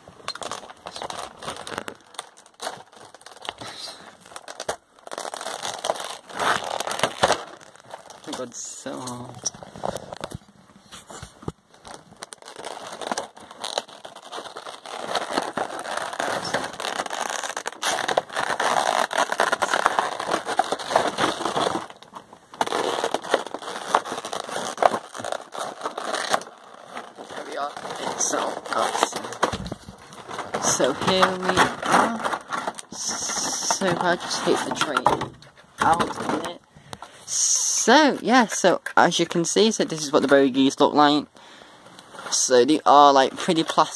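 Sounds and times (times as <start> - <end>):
plastic packaging crinkling: 0.3 - 37.2.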